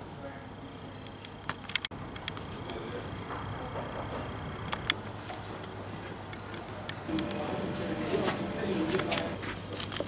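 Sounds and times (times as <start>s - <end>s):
steady low hum: 0.0s - 10.0s
person speaking: 7.1s - 9.4s.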